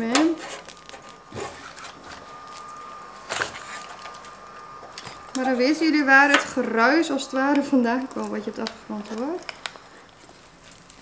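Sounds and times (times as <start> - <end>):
high-pitched renovation whine: 0.0 - 11.0
low hiss: 0.0 - 11.0.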